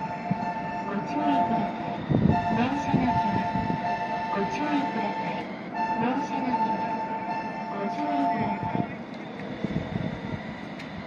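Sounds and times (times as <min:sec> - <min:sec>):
two-tone electronic sound: 0:00.0 - 0:09.0
low rumble: 0:00.0 - 0:11.0
tram running noise: 0:00.0 - 0:11.0.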